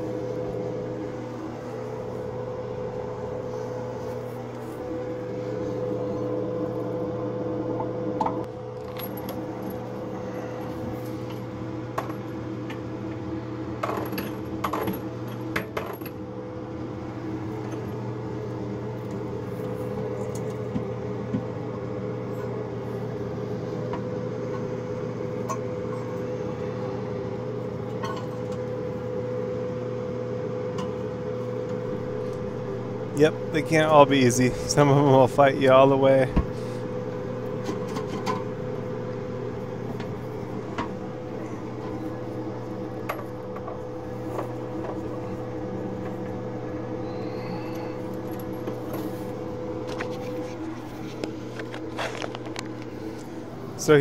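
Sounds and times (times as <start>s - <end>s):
steady hum: 0.0s - 54.0s.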